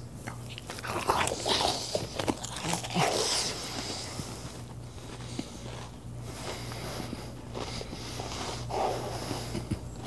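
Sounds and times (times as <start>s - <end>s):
man chewing crunchy cookie: 0.0s - 10.0s.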